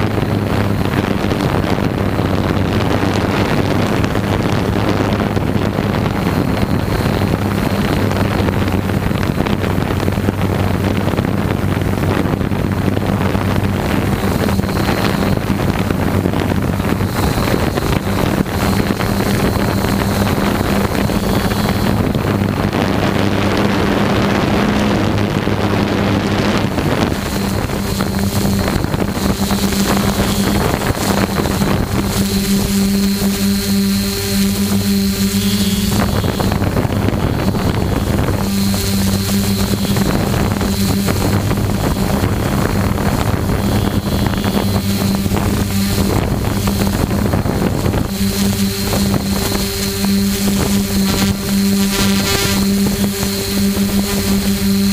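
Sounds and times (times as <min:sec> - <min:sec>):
drone motors humming: 0:00.0 - 0:54.9
high whine: 0:00.0 - 0:54.9
wind noise on microphone: 0:00.0 - 0:54.9.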